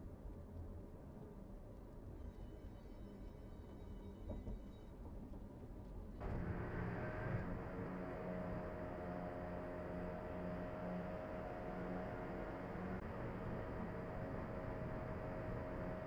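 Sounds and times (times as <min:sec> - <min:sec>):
car road and engine noise: 0:06.2 - 0:16.0.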